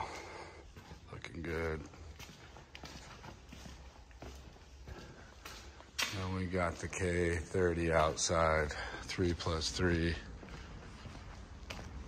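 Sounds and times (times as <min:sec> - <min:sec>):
footsteps on concrete floor: 0:00.0 - 0:12.0.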